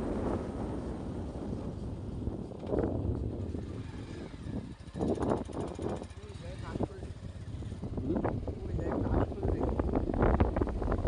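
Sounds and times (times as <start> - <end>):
motorbike engine rumble: 0.0 - 11.0
wind rushing over microphone: 0.0 - 11.0.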